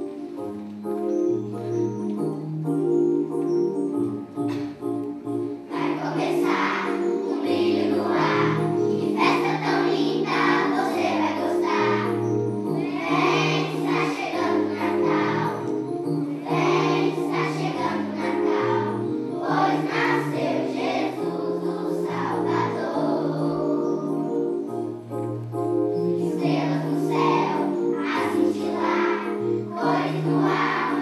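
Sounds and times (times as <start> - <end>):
keyboard sustained low notes: 0.0 - 31.0
children's choir singing: 1.7 - 25.0, 26.0 - 31.0.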